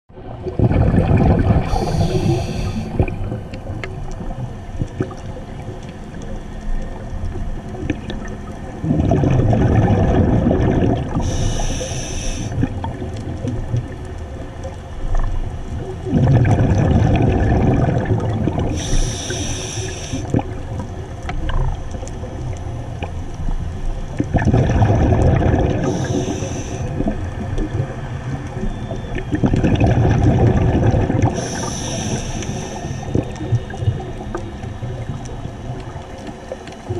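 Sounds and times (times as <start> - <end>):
underwater exhaled air bubbling: 0.1 - 36.9
scuba regulator hiss: 1.6 - 3.0, 11.2 - 12.6, 18.7 - 20.3, 25.8 - 27.0, 31.3 - 33.2.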